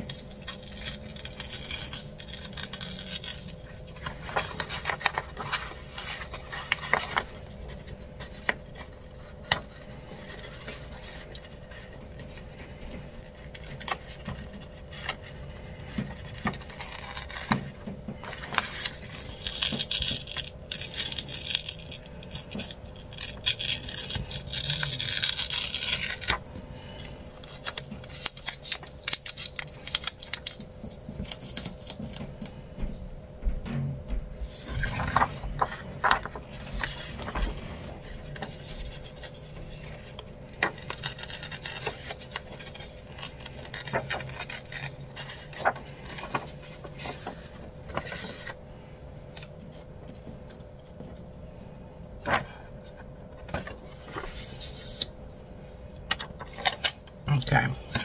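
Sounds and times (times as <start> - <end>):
stickers peeled and pressed: 0.0 - 32.6, 34.5 - 48.6
paper rustling: 0.0 - 32.7, 34.4 - 58.0
faint steady hum: 0.0 - 58.0.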